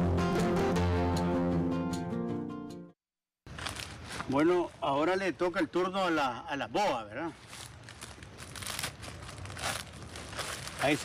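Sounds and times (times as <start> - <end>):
plastic bag crinkling: 7.4 - 11.0.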